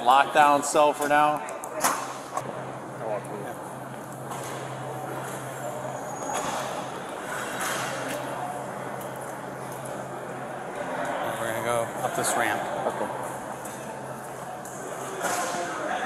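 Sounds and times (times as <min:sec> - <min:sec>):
steady low hum: 0:02.0 - 0:16.0.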